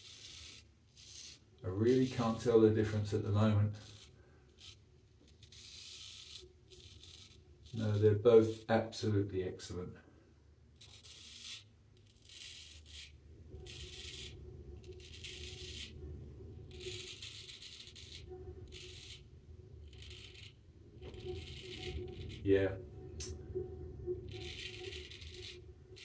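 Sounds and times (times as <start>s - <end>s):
straight razor scraping stubble: 0.0s - 8.8s, 10.8s - 16.0s, 16.6s - 22.5s, 24.2s - 26.0s.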